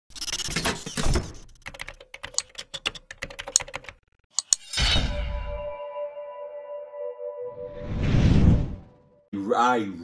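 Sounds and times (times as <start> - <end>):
keyboard typing: 0.2 - 4.5
held musical tone: 5.2 - 8.0
whoosh: 7.6 - 9.0.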